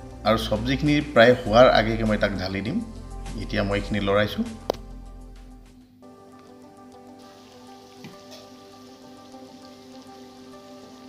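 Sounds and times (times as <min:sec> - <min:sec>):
soft background music: 0:00.0 - 0:11.0
meat sizzling in oil: 0:06.8 - 0:11.0.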